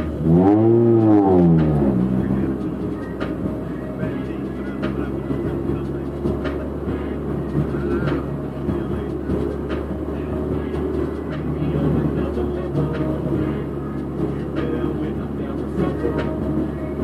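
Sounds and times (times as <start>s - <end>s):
car engine revving inside cabin: 0.0s - 17.0s.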